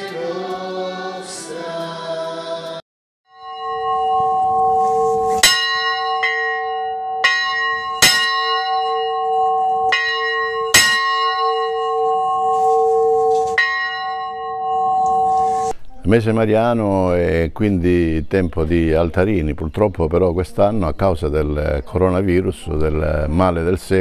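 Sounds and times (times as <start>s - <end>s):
church bell ringing: 3.3s - 15.7s.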